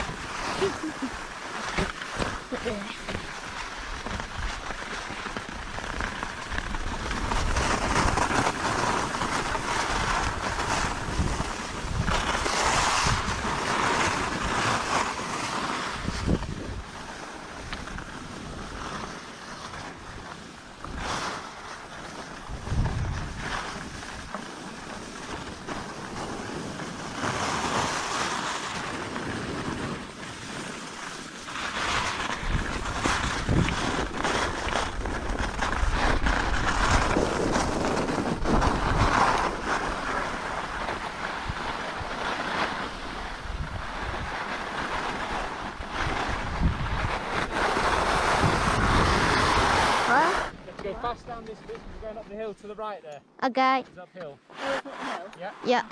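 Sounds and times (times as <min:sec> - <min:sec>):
wind buffeting microphone: 0:00.0 - 0:01.1, 0:09.1 - 0:14.9, 0:15.9 - 0:18.9, 0:22.4 - 0:24.3, 0:32.0 - 0:42.3, 0:43.0 - 0:52.3
skis scraping over snow: 0:00.0 - 0:53.0, 0:53.6 - 0:55.9.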